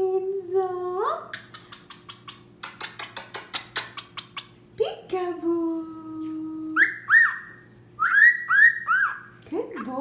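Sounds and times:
cockatiel whistling: 0:06.8 - 0:09.3.

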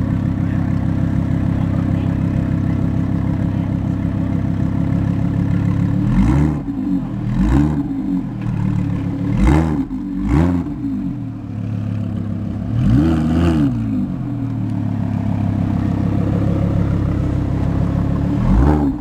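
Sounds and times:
car engine idling and revving: 0:00.0 - 0:19.0.

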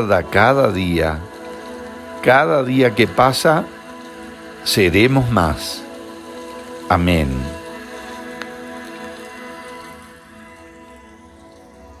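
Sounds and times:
rain-like patter: 0:00.0 - 0:12.0
soft music of held tones: 0:00.0 - 0:12.0.

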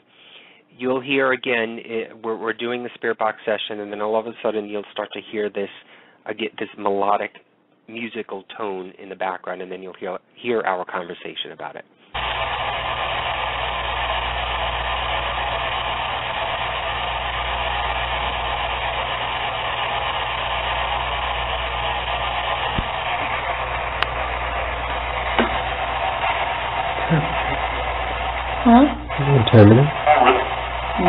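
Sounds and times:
low hum: 0:12.2 - 0:31.0
radio static hiss: 0:12.2 - 0:31.0
voices: 0:27.0 - 0:27.8, 0:28.6 - 0:31.0.

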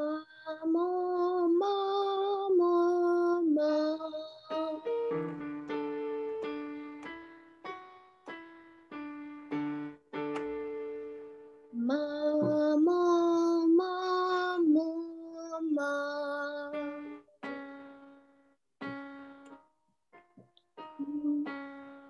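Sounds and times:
woman singing vocal warm-up: 0:00.0 - 0:05.0, 0:11.8 - 0:16.9, 0:21.0 - 0:21.5
piano playing short notes: 0:04.5 - 0:11.4.

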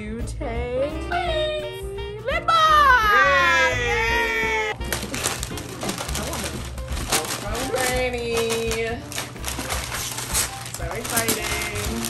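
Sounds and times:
quiet background music: 0:00.0 - 0:12.0
wrapping paper tearing and crinkling: 0:04.7 - 0:12.0.

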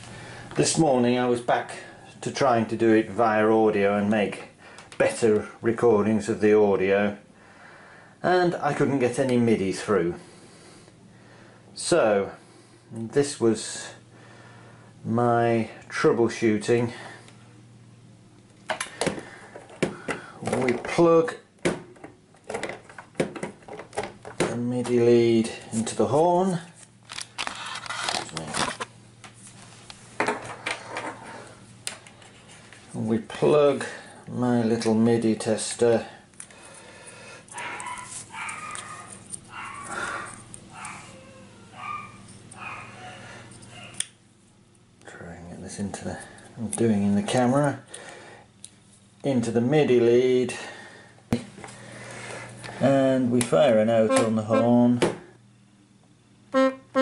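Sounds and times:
cables rustling and clicking: 0:25.7 - 0:31.2, 0:37.5 - 0:42.8
digital horn notes: 0:53.9 - 0:55.0, 0:56.5 - 0:57.0.

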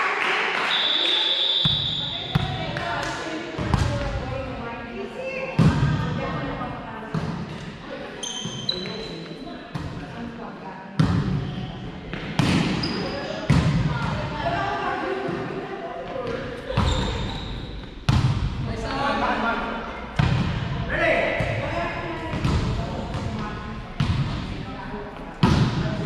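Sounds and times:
shoes squeaking on court: 0:08.1 - 0:09.5, 0:11.3 - 0:13.5, 0:16.6 - 0:18.0.

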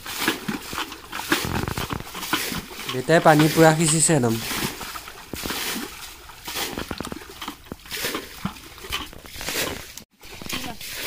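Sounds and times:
muddy water splashing: 0:00.0 - 0:11.0.

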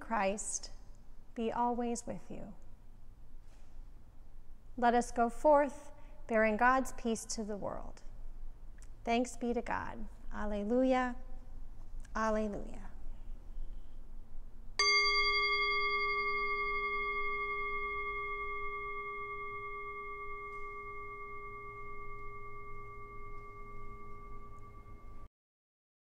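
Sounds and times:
metal singing bowl ringing: 0:14.8 - 0:25.3.

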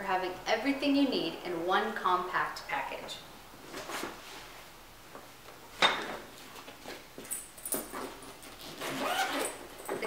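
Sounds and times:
zipper: 0:07.8 - 0:10.0.

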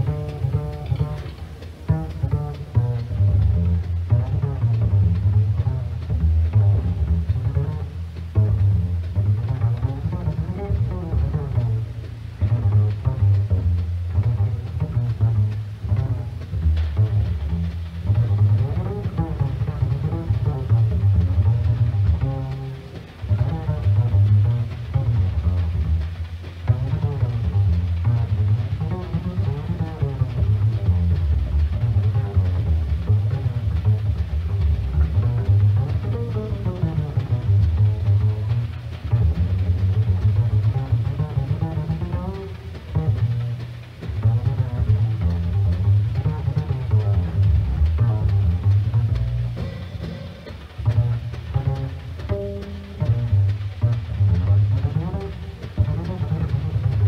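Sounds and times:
plucked jazz double bass: 0:00.0 - 0:57.0.

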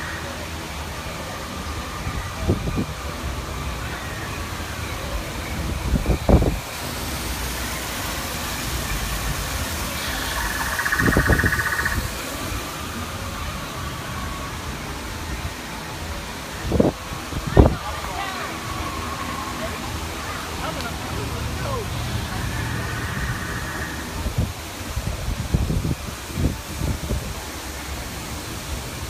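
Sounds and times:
steady rushing ambient noise: 0:00.0 - 0:29.0
waterfall hiss: 0:00.0 - 0:29.0
rapid pulsing high tone: 0:09.8 - 0:12.9.

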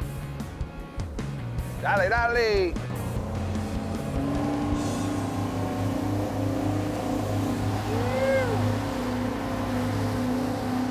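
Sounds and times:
boat engines droning: 0:00.0 - 0:10.9
rushing water: 0:01.2 - 0:10.9
rising then falling tone: 0:02.9 - 0:10.6.

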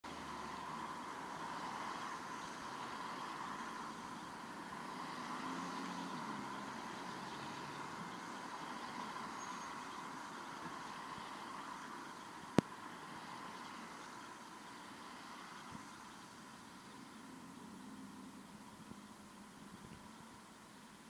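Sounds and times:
car engine: 0:00.0 - 0:21.0
tyres hissing on wet road: 0:00.0 - 0:21.0.

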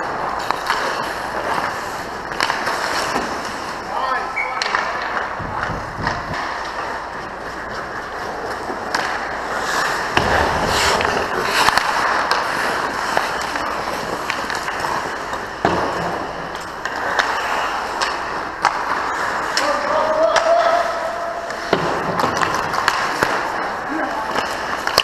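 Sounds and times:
skates scraping ice: 0:00.0 - 0:25.0
sticks and puck clacking: 0:00.0 - 0:25.0
sharp crack: 0:08.8 - 0:20.9
heavy thud: 0:10.1 - 0:11.1.

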